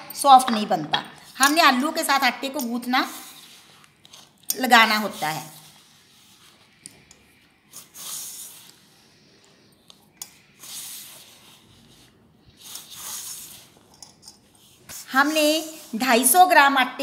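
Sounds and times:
hands rubbing flour and potato: 2.8 - 6.8, 10.4 - 13.9, 14.5 - 16.7.

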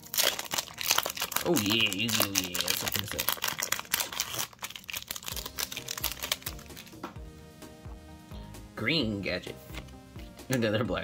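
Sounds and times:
foil wrapper crinkling: 0.0 - 7.0
background music with beat: 5.3 - 11.0.

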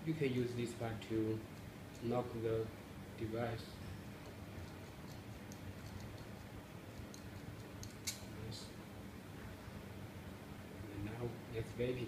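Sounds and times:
steady low hum: 0.0 - 12.0
small metal ticks and clicks: 4.2 - 8.2.

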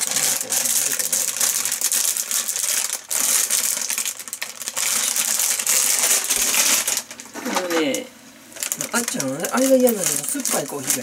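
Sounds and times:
plastic packaging crinkling: 0.0 - 11.0.

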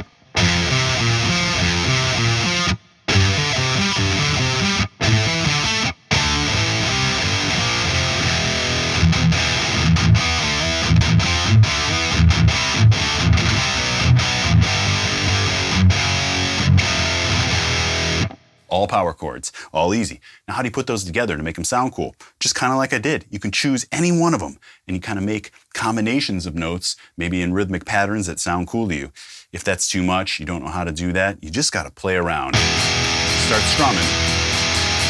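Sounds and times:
distorted electric guitar riff: 0.0 - 18.6, 32.5 - 35.0.

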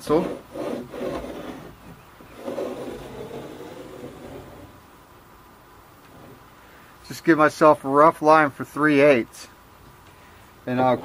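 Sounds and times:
pencil scraping on wood: 0.0 - 4.7.

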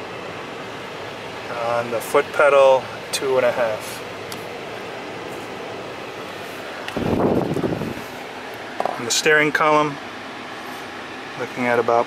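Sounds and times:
car ventilation fan hiss: 0.0 - 12.0.

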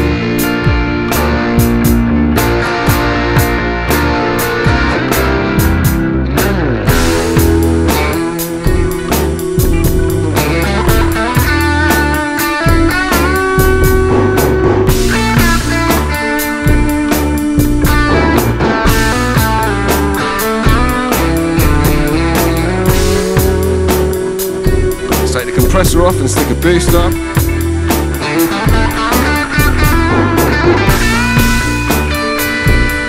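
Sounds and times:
bass: 0.0 - 33.0
electric guitar lead with string bends: 0.0 - 33.0
steady drum beat: 0.0 - 33.0.

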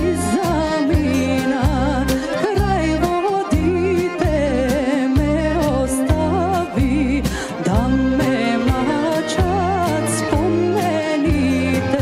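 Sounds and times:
song with ornamented melody: 0.0 - 12.0.

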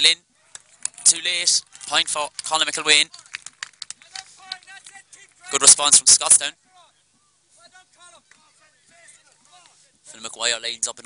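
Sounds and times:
distant voices: 0.2 - 10.2.

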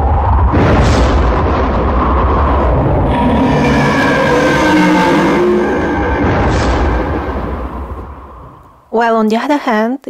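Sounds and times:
heavy low rumble: 0.0 - 9.0
ominous pitched tones: 2.2 - 8.9.

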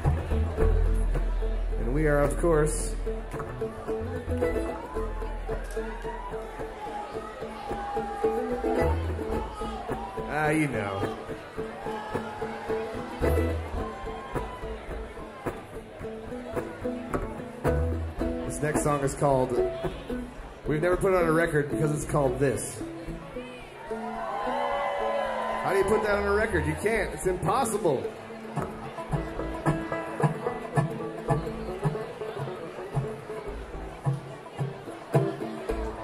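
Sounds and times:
upright bass notes: 0.0 - 6.6, 7.9 - 11.8, 12.6 - 23.3
string instruments noodling: 0.0 - 36.0.

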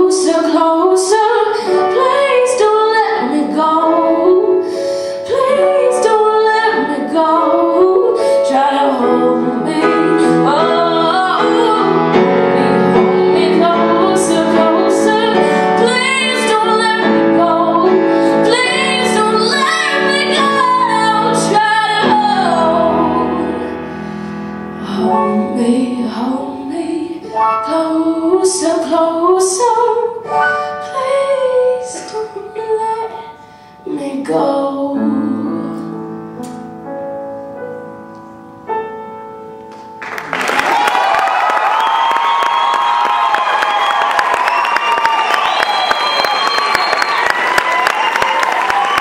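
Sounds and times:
woman singing: 0.0 - 23.8, 24.8 - 36.0
grand piano accompaniment: 0.0 - 49.0.

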